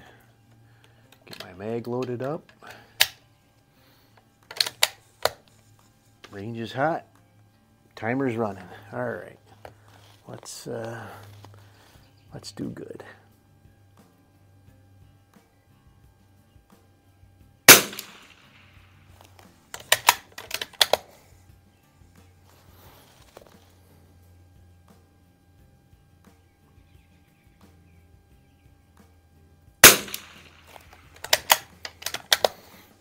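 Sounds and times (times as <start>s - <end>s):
rifle bolt metallic clicks: 1.2s - 3.2s, 4.5s - 5.4s, 17.7s - 18.3s, 19.2s - 21.1s, 29.8s - 32.6s
rifle shots: 17.7s - 18.6s, 29.8s - 32.6s.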